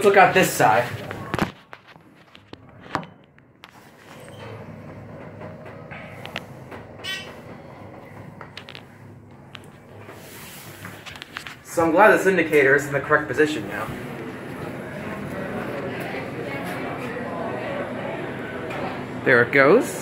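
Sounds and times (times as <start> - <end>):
elevator low hum: 2.5 - 20.0.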